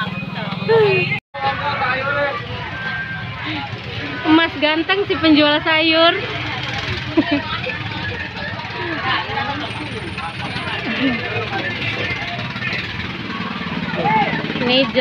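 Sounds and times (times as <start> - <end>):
motorbike engines humming: 0.0 - 15.0.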